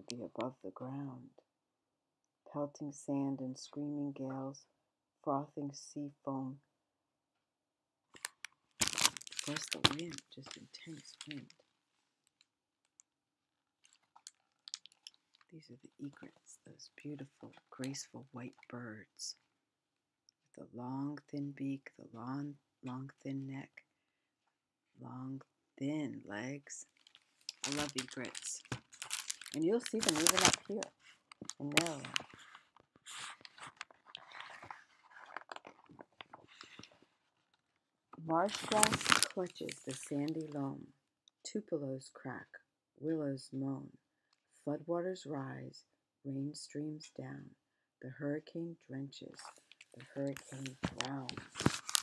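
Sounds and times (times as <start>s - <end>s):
book pages rustling: 8.2s - 11.6s, 13.8s - 16.4s, 26.9s - 37.6s, 38.3s - 40.5s, 49.4s - 52.0s.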